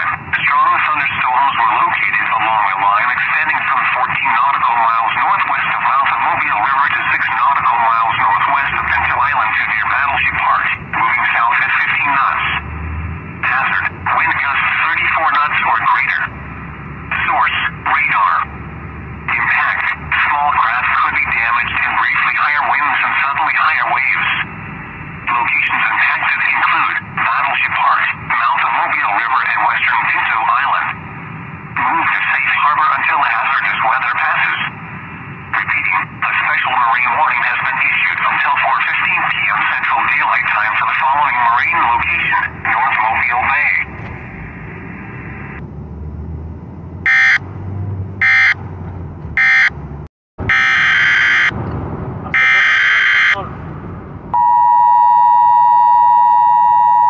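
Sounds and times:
person reading over radio: 0.0 - 12.6, 13.4 - 16.4, 17.0 - 18.6, 19.2 - 24.6, 25.2 - 31.1, 31.7 - 34.9, 35.5 - 45.6, 47.1 - 47.4, 50.5 - 51.6, 52.2 - 53.6.

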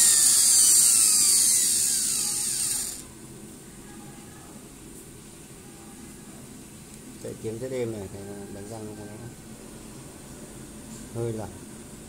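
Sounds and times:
angle grinder motor whine: 0.0 - 3.1.

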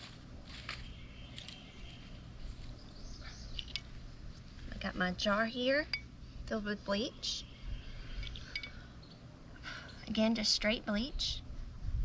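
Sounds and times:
wind rumble on microphone: 10.6 - 12.0.

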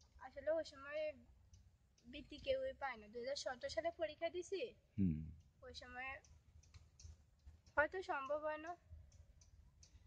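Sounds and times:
faint scattered clicks: 0.0 - 4.0, 5.4 - 10.0
woman speaking: 0.2 - 1.2, 2.0 - 4.8, 5.6 - 6.3, 7.8 - 8.8.

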